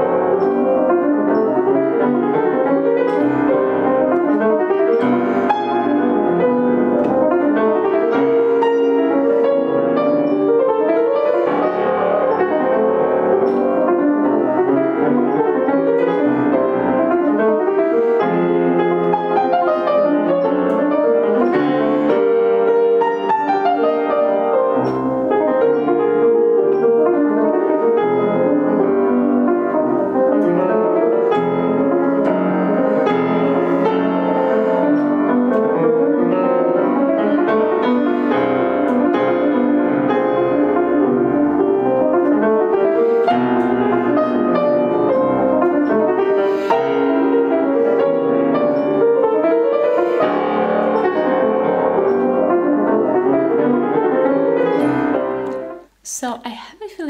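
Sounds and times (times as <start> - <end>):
grand piano playing: 0.0 - 56.0.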